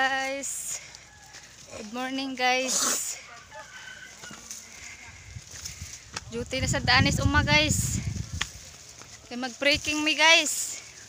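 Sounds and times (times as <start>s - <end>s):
chicken calls: 3.2s - 5.9s.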